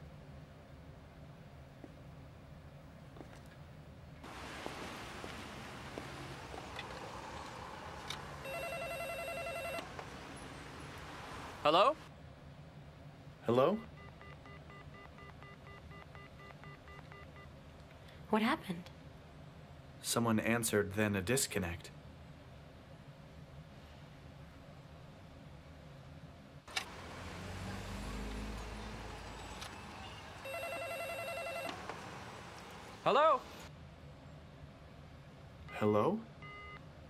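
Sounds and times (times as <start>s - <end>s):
electronic telephone beeps: 8.4s - 9.8s, 13.8s - 17.5s, 30.4s - 31.8s, 36.4s - 36.8s
telephone ringing: 8.4s - 9.9s, 30.4s - 31.9s.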